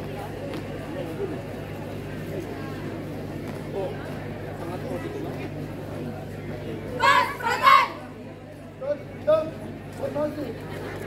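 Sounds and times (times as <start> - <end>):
young voices shouting in unison: 7.0 - 8.0.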